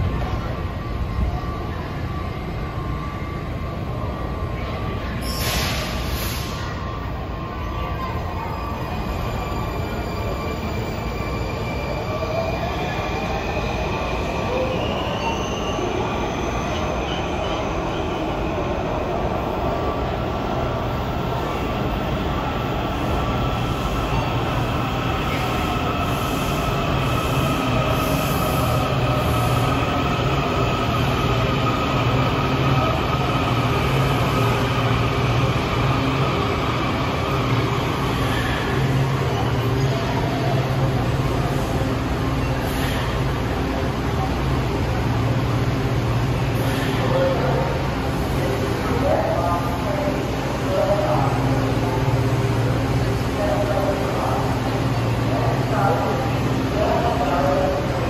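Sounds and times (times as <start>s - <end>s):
train low rumble: 0.0s - 15.4s
squealing train wheels: 0.2s - 19.9s, 21.3s - 43.6s.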